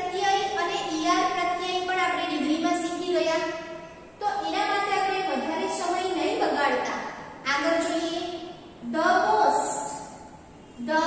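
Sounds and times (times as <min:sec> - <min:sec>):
woman speaking: 0:00.0 - 0:03.6, 0:04.2 - 0:10.2, 0:10.8 - 0:11.0.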